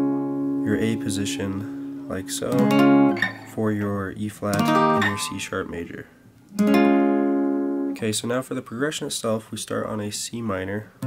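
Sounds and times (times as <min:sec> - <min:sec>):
acoustic guitar chord ringing: 0:00.0 - 0:05.8, 0:06.6 - 0:08.0.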